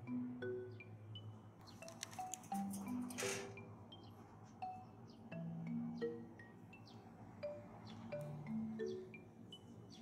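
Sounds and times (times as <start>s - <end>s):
chime and mallet music: 0.0s - 10.0s.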